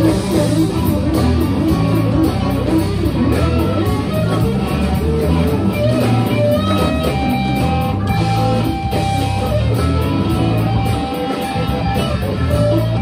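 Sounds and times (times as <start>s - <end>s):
electric guitar lead: 0.0s - 13.0s
live blues band playing: 0.0s - 13.0s.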